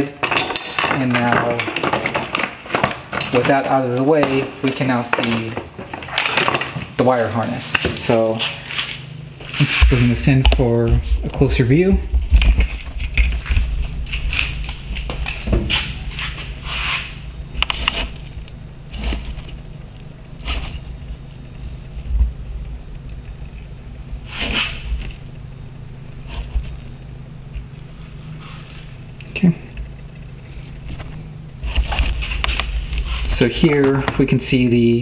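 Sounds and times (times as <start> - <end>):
low hum: 0.0 - 35.0.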